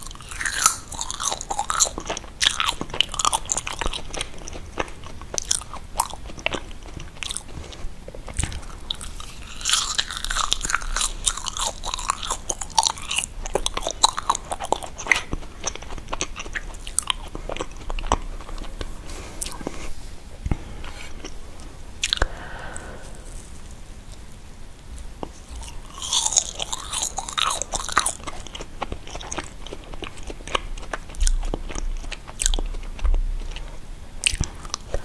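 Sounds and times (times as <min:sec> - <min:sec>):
chewing marshmallows: 0:00.0 - 0:23.5, 0:24.1 - 0:35.0
lip and tongue smacks: 0:22.0 - 0:22.9, 0:34.2 - 0:35.0.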